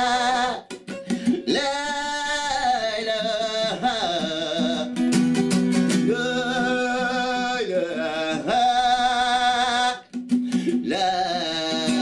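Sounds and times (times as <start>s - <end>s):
acoustic guitar: 0.0s - 12.0s
man singing: 0.0s - 12.0s.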